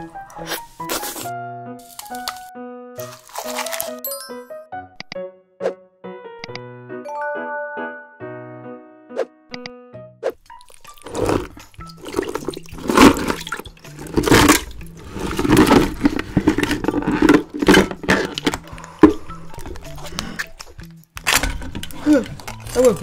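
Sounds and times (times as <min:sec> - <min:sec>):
crabs scraping and clattering: 0:10.5 - 0:23.0.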